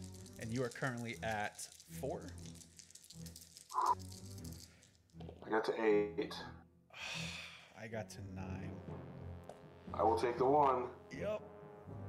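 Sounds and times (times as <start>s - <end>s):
dice rattling in hand: 0.0s - 5.2s.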